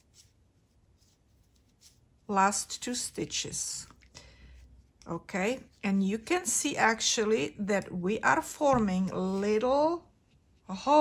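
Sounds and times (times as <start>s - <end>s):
yarn rustling on knitting needles: 0.0s - 11.0s.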